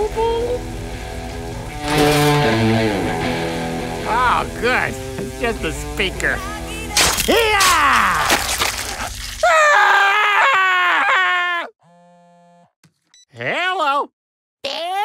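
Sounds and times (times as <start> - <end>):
cartoon water spraying: 1.7 - 9.7.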